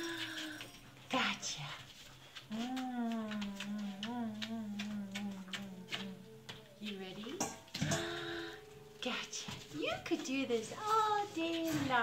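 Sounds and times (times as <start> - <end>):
woman humming: 0.0 - 0.8, 2.5 - 9.0.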